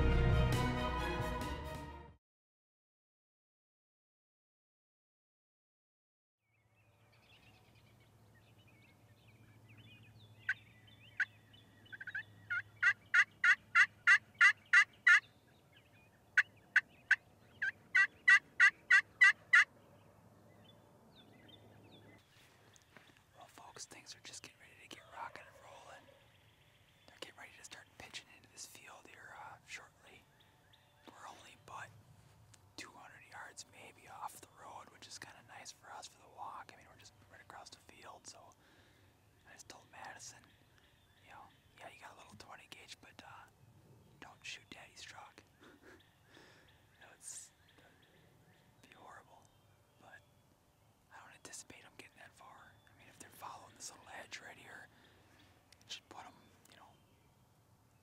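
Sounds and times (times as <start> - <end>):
man whispering: 23.2 - 26.2, 27.1 - 30.3, 31.0 - 32.0, 32.7 - 38.7, 39.4 - 40.6, 41.2 - 43.6, 44.2 - 45.6, 46.9 - 48.2, 48.8 - 50.3, 51.1 - 55.1, 55.8 - 57.0.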